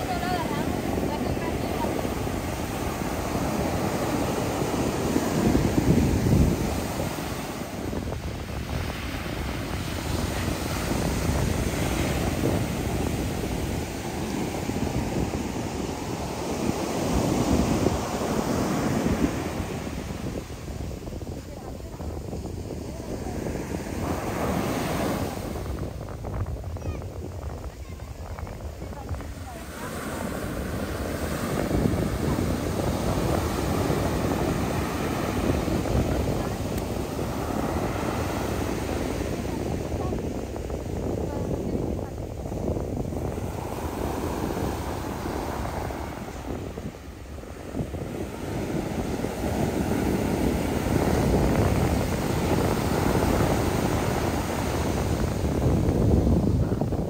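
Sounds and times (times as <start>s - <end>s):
ocean surf breaking: 0.0s - 57.0s.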